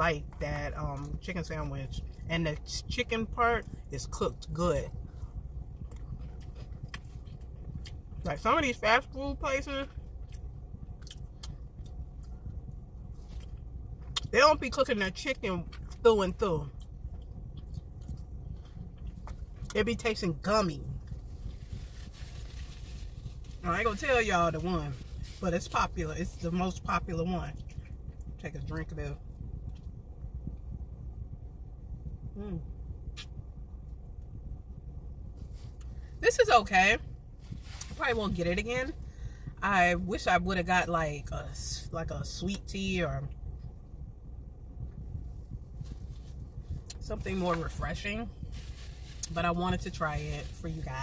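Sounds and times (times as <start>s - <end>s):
car cabin rumble: 0.0s - 51.0s.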